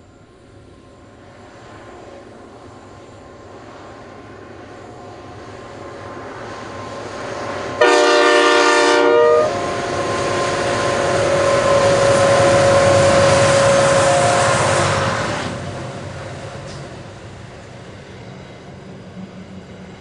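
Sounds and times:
locomotive engine drone: 0.0s - 20.0s
multi-note train horn blast: 7.8s - 15.0s.

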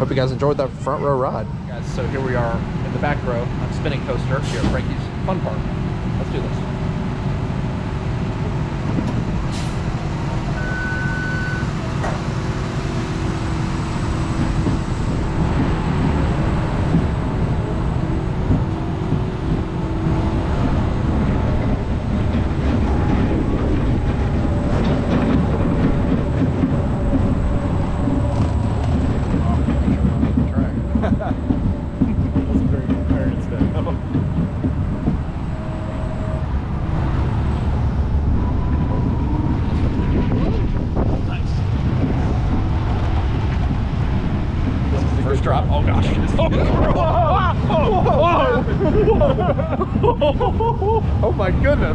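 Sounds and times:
coaster wheels rumbling on track: 0.0s - 51.9s.

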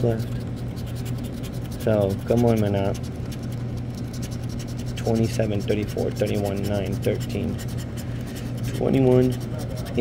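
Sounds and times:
scraper scratching ticket coating: 0.0s - 10.0s
steady low hum: 0.0s - 10.0s.

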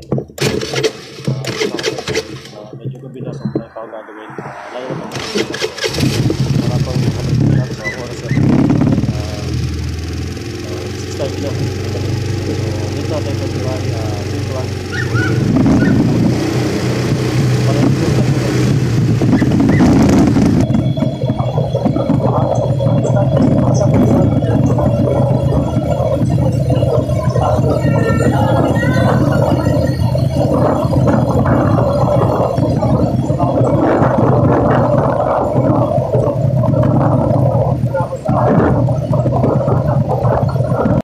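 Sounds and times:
motorcycle engine running: 0.0s - 3.8s, 4.4s - 41.0s
road and wind noise: 0.0s - 41.0s
muffled voice: 1.2s - 9.6s, 10.6s - 18.8s, 20.6s - 41.0s.

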